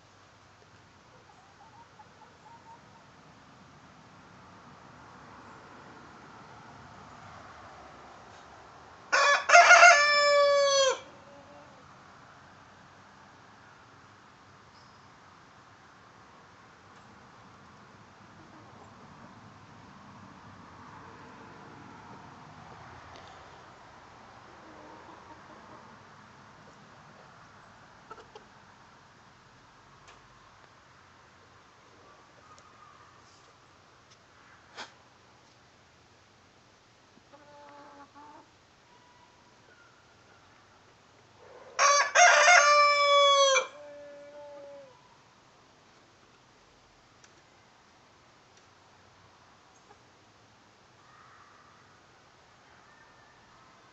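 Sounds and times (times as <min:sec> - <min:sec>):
rooster crowing: 0:09.1 - 0:11.7, 0:41.8 - 0:45.0, 0:52.8 - 0:53.6.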